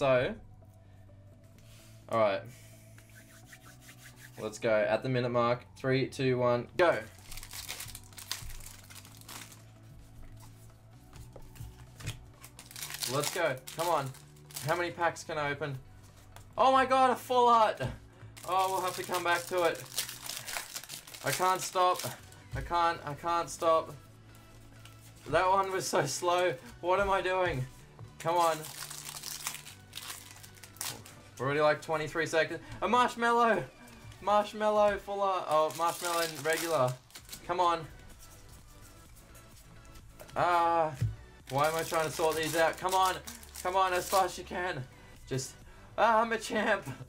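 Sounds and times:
foil wrappers tearing and crinkling: 0:07.1 - 0:09.6, 0:12.4 - 0:14.8, 0:18.4 - 0:22.3, 0:28.3 - 0:31.1, 0:35.5 - 0:37.4, 0:41.4 - 0:44.3.

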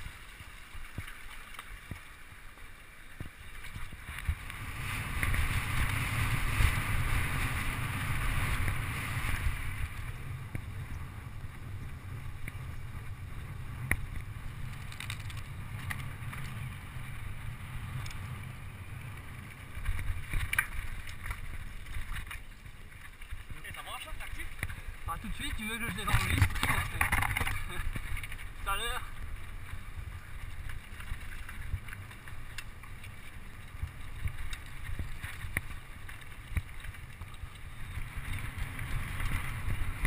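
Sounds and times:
bike rattling: 0:00.0 - 0:40.0
wind rumbling on microphone: 0:00.0 - 0:40.0.

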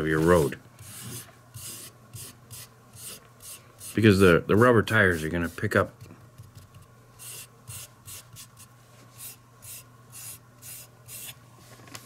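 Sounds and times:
fingertip scratchy rubbing strokes: 0:00.1 - 0:05.9, 0:07.2 - 0:11.4.

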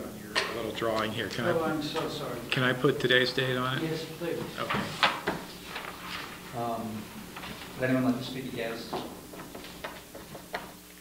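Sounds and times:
man speaking: 0:00.0 - 0:05.0, 0:06.5 - 0:07.2, 0:07.8 - 0:09.2.

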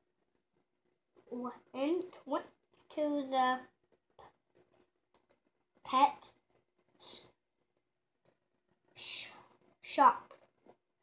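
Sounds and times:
child reading aloud: 0:01.3 - 0:03.7, 0:05.8 - 0:06.3, 0:09.0 - 0:10.3
child whispering: 0:09.0 - 0:10.3.

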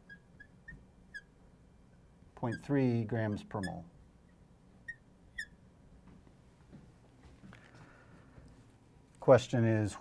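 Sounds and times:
marker squeaking on glass: 0:00.0 - 0:01.4, 0:02.4 - 0:05.7
faint room noise: 0:00.0 - 0:10.0.

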